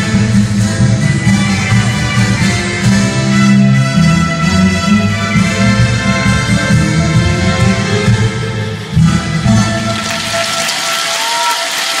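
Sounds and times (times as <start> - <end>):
dance music: 0.0 - 12.0
audience clapping: 9.6 - 12.0.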